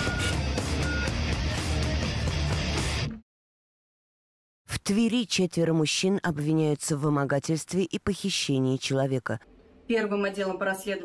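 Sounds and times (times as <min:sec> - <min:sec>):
theme music: 0:00.0 - 0:03.2.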